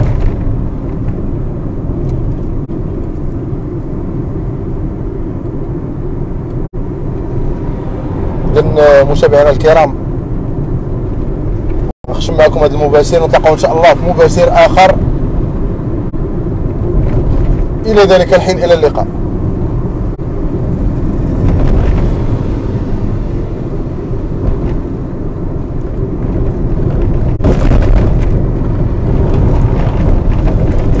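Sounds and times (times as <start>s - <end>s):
car driving interior rumble: 0.0s - 31.0s.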